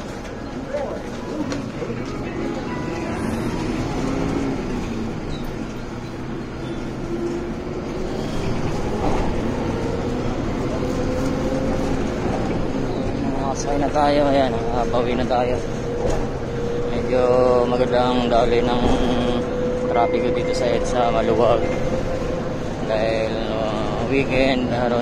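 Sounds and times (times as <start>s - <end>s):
bus engine rumble: 0.0s - 25.0s
faint voices: 0.0s - 25.0s.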